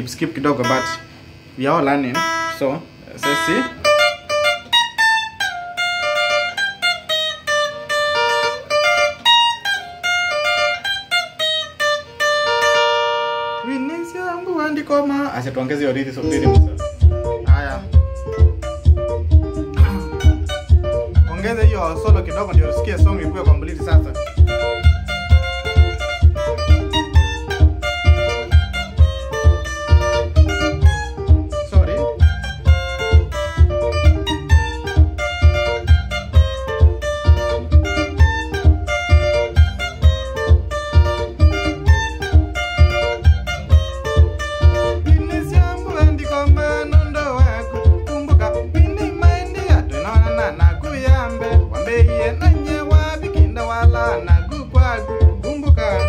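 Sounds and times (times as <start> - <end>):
electric guitar solo: 0.0 - 56.0
backing track with steady beat: 0.5 - 56.0.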